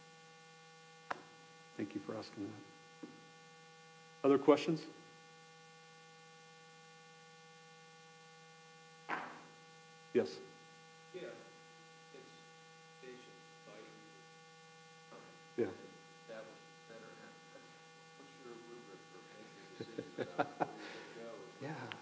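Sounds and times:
electrical mains hum: 0:00.0 - 0:22.0
man speaking: 0:15.1 - 0:22.0.

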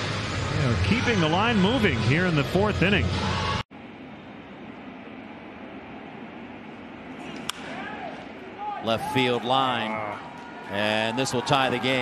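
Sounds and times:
low background noise: 0:03.7 - 0:12.0.

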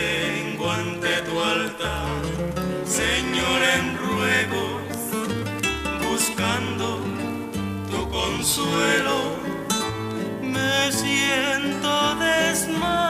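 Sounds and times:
acoustic guitars playing bolero: 0:00.0 - 0:13.0.

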